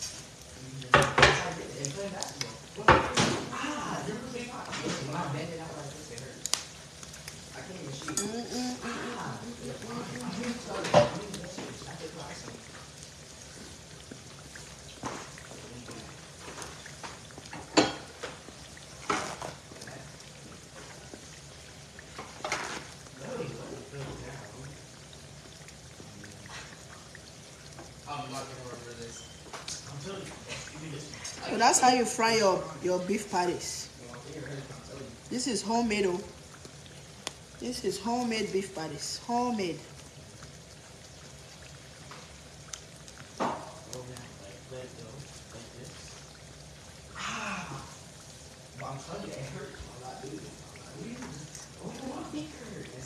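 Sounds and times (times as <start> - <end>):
patties sizzling in oil: 0.0 - 53.0.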